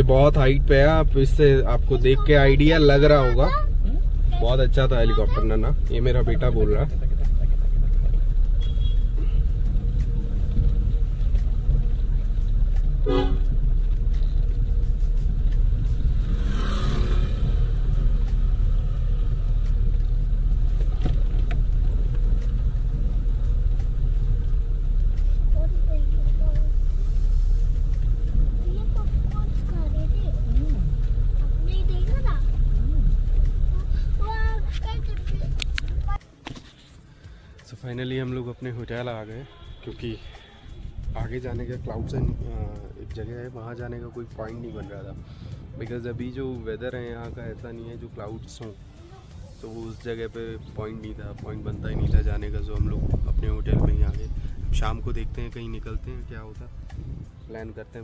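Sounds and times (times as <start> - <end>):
car engine and tyres rumble: 0.0 - 58.0
car horn: 8.6 - 9.4, 13.0 - 13.7.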